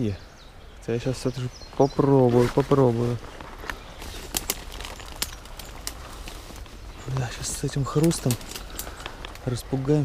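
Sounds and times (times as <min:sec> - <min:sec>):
rustling through undergrowth: 0:00.9 - 0:10.0
twigs snapping underfoot: 0:02.6 - 0:09.6.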